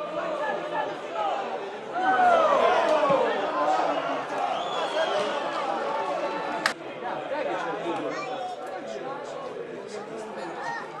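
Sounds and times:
people talking and calling: 0.0s - 11.0s.

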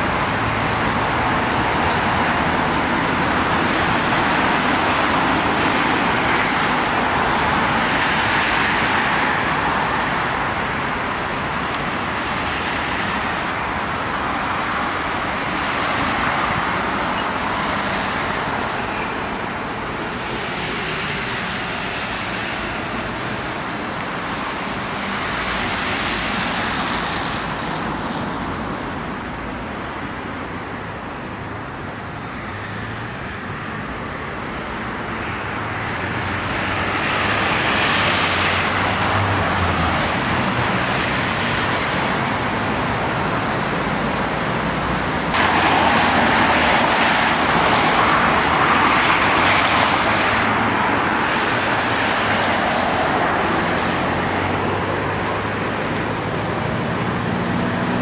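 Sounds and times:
road traffic noise: 0.0s - 58.0s.

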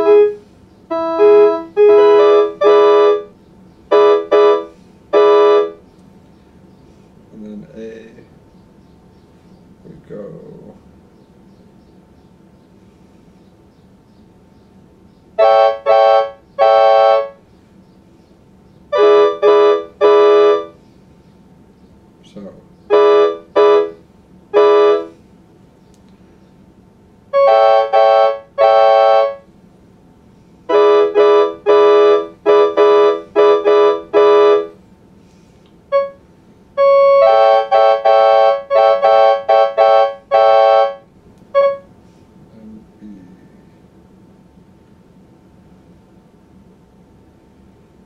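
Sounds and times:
electronic keyboard chords: 0.0s - 5.9s, 15.4s - 17.4s, 18.9s - 20.8s, 22.9s - 25.2s, 27.3s - 29.5s, 30.7s - 34.8s, 35.8s - 41.9s.

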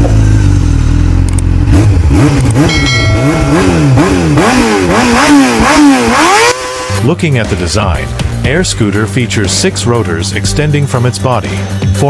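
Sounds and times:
motorcycle engine revving: 0.0s - 10.8s.

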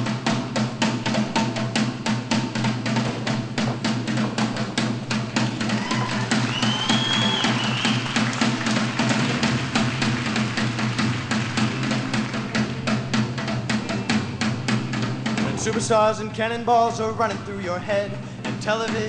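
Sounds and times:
busy drum kit beat: 0.0s - 19.0s
instrumental band music: 0.0s - 19.0s
steady bass line: 0.0s - 19.0s.

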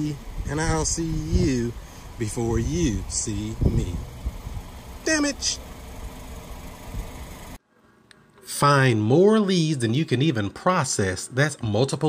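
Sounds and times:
low outdoor rumble: 0.0s - 8.0s.

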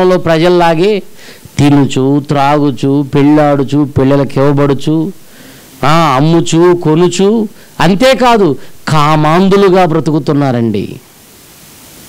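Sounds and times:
man preaching into microphone: 0.0s - 11.0s
faint hiss: 0.0s - 12.0s.

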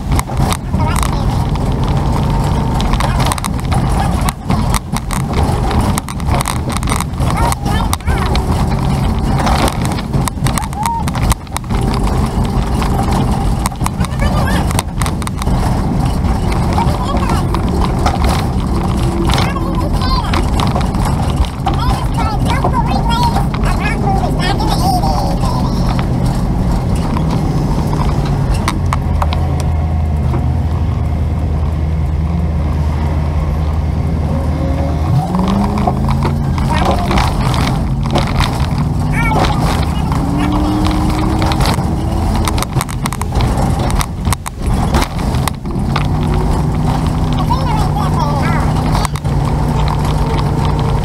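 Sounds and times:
road and wind noise: 0.0s - 51.0s
vehicle engine running: 0.0s - 51.0s.

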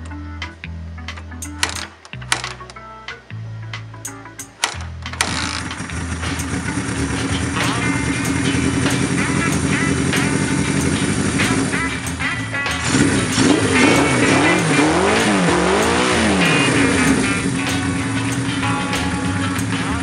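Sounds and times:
motorcycle engine idling and revving: 4.6s - 20.0s.

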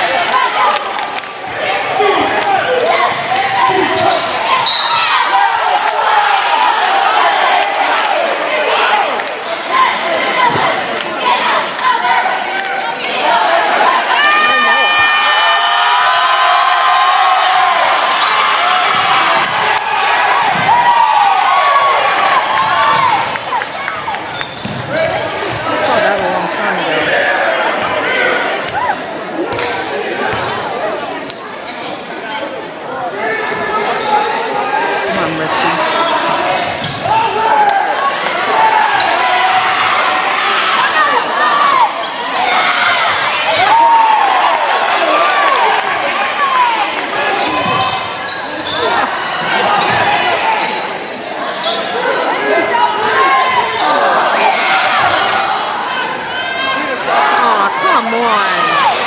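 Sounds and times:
spectators voices and shouts: 0.0s - 59.0s
basketball bouncing on court: 24.1s - 26.3s.

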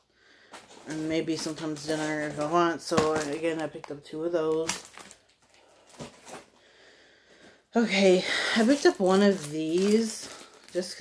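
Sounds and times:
plastic packaging rustling: 0.4s - 6.6s, 8.0s - 11.0s.

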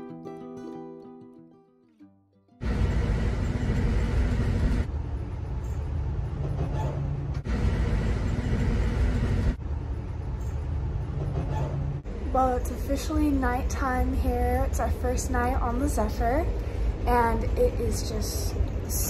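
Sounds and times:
guitar music: 0.0s - 2.6s
low steady hum: 2.6s - 19.0s
train car rumble and roar: 2.6s - 19.0s.

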